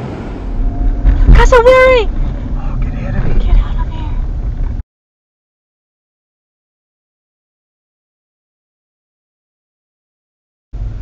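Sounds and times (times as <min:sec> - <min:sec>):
car engine rumble: 0:00.0 - 0:04.8, 0:10.8 - 0:11.0
tyre road noise: 0:00.0 - 0:04.8, 0:10.8 - 0:11.0.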